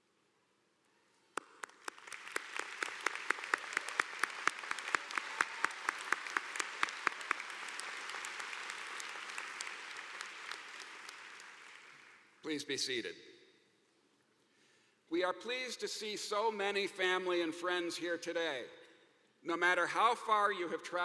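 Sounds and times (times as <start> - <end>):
nearby hands clapping sharply: 1.4 - 12.2
audience applauding: 1.4 - 12.4.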